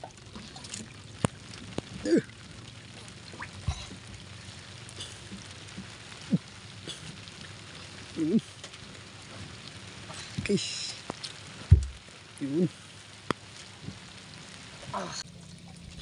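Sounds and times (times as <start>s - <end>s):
rain on water and boat: 0.0s - 16.0s.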